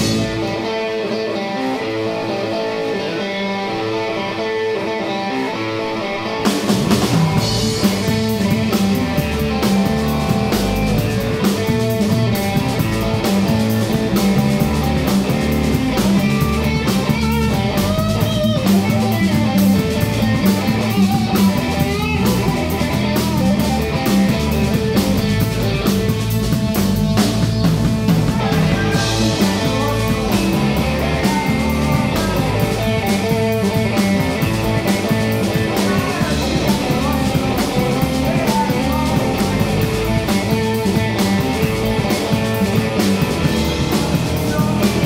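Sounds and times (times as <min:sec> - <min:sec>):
electric guitar: 0:00.0 - 0:45.0
live rock band: 0:00.0 - 0:45.0.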